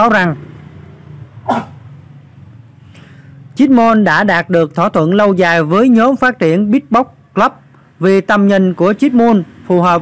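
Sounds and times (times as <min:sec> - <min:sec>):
short yelp rising in pitch: 0:01.4 - 0:01.9.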